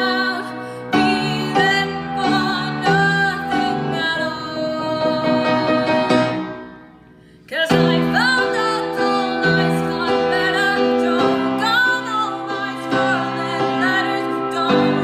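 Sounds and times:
woman singing: 0.0s - 6.8s, 7.5s - 15.0s
piano: 0.0s - 15.0s.

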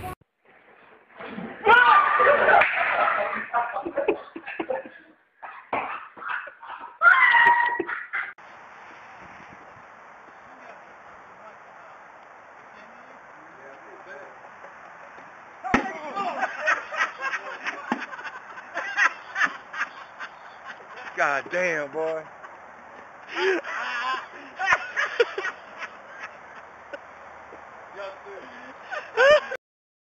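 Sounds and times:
group laughing and shouting: 1.6s - 8.4s, 14.4s - 27.1s, 28.0s - 29.6s.

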